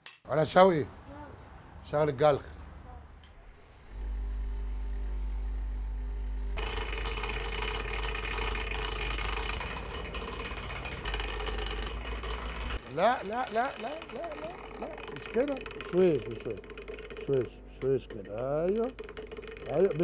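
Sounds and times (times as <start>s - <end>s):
bench grinder motor humming: 3.4s - 20.0s
metal grinding on wheel: 3.4s - 20.0s.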